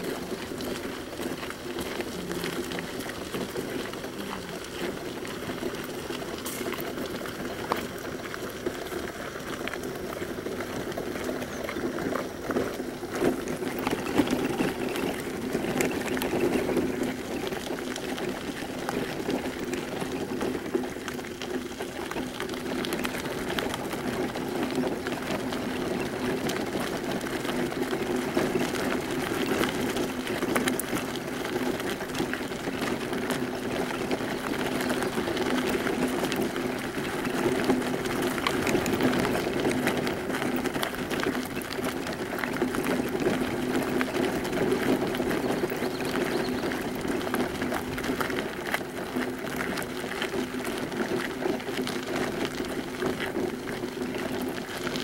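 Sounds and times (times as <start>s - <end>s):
footsteps crunching on gravel: 0.0s - 55.0s.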